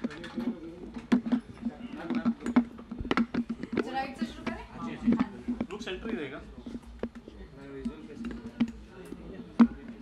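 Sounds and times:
background voices and chatter: 0.0s - 10.0s.

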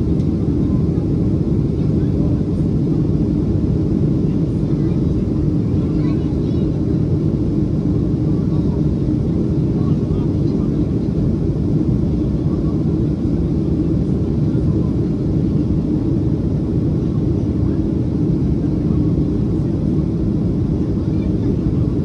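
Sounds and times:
airliner cabin engine drone: 0.0s - 22.0s
faint passenger voices: 0.0s - 22.0s.

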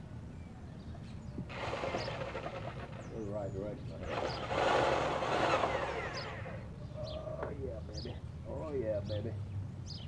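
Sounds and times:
electric drill boring into wood: 1.5s - 3.0s, 4.0s - 6.7s.

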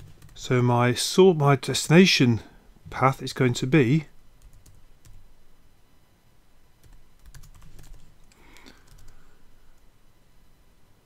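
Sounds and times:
typing on computer keyboard: 0.0s - 0.4s, 4.4s - 5.2s, 6.8s - 9.2s.

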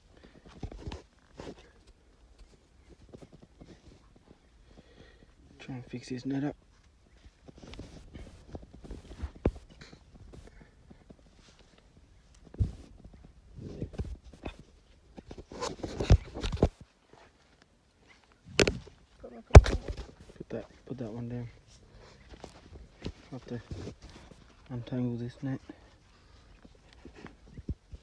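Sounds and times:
footsteps on dry dirt: 5.9s - 28.0s.

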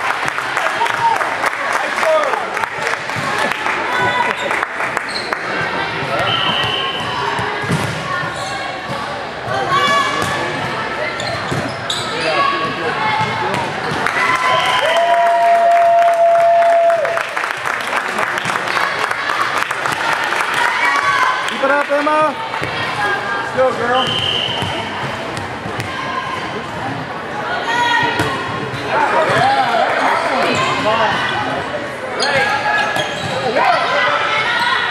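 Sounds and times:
players and spectators calling out: 0.6s - 17.1s, 18.2s - 34.9s.

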